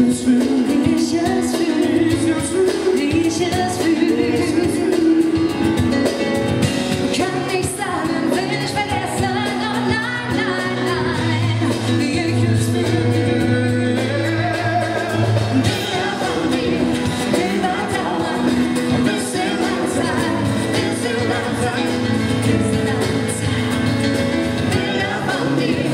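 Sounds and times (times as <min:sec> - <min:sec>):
woman singing pop ballad: 0:00.0 - 0:06.2, 0:06.9 - 0:25.9
acoustic guitar: 0:00.0 - 0:25.9
band accompaniment with bass: 0:00.0 - 0:25.9.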